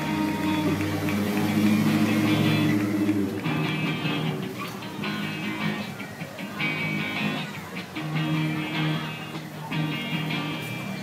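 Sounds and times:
band playing loud music: 0:00.0 - 0:11.0
ringing guitar chords: 0:00.0 - 0:11.0.

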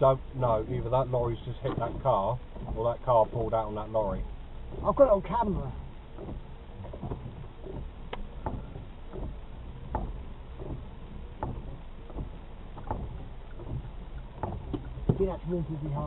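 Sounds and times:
vehicle engine idling: 0:00.0 - 0:16.0
light taps and clicks: 0:01.4 - 0:05.4, 0:06.1 - 0:15.3.

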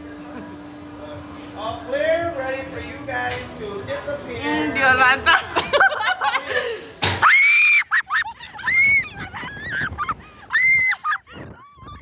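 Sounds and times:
women laughing: 0:05.2 - 0:12.0.

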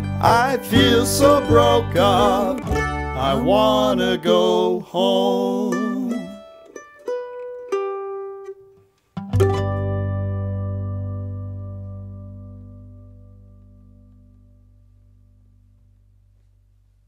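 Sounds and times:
acoustic plucked strings: 0:00.0 - 0:15.8.

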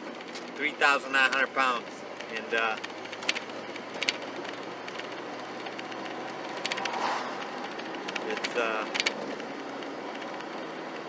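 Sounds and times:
in-cabin engine and road noise: 0:00.0 - 0:11.0.

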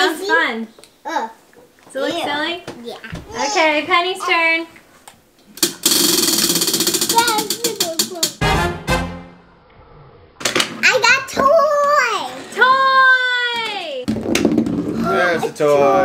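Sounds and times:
prize wheel clicking: 0:05.6 - 0:08.4.

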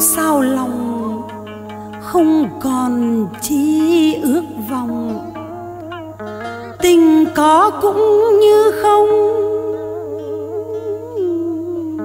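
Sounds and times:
person chanting a wavering note: 0:00.0 - 0:12.0
soft instrumental accompaniment: 0:00.0 - 0:12.0.

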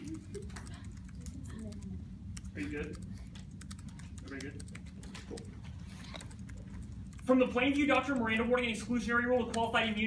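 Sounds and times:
typing on laptop keyboard: 0:00.0 - 0:10.0.

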